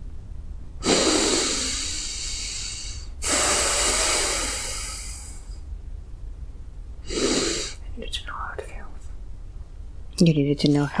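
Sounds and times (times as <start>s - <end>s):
man breathing deeply: 0.8s - 5.6s, 7.0s - 7.8s.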